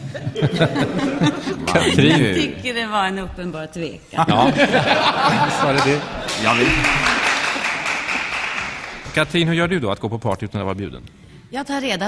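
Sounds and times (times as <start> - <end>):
audience applauding: 5.2 - 9.5.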